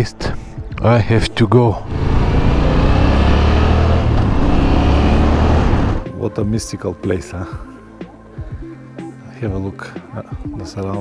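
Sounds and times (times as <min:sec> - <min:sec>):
motorcycle engine running: 0:01.8 - 0:06.0.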